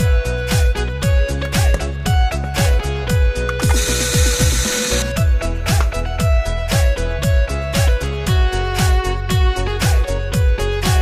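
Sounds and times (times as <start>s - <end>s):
upbeat background music: 0.0s - 11.0s
food chopper whirring: 3.5s - 5.2s.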